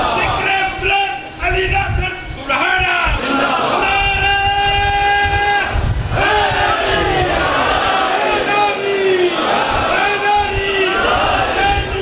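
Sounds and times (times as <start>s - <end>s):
crowd voices: 6.6s - 8.9s
man chanting into a microphone: 6.7s - 8.0s.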